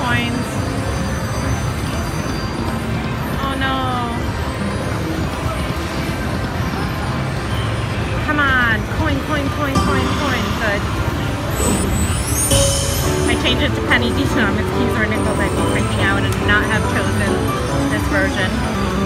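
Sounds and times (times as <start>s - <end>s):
other slot machines: 0.0s - 19.0s
slot machine chiming tones: 9.6s - 19.0s
casino chatter: 13.3s - 19.0s.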